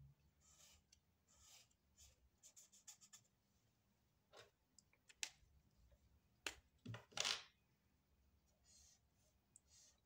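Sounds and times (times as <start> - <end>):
highlighter stroking across paper: 0.4 - 3.3, 8.6 - 10.0.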